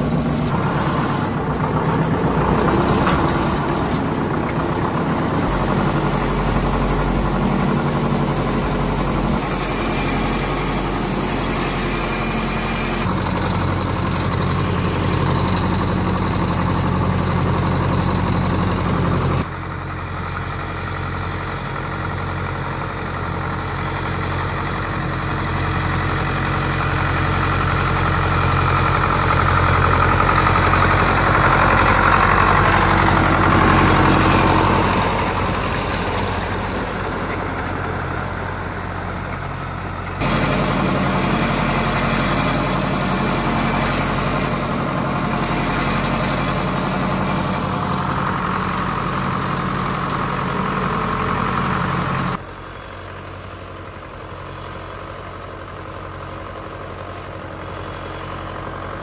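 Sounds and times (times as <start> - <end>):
grader scraping over gravel: 0.0 - 19.4, 26.1 - 52.4
tractor diesel engine: 0.0 - 59.0.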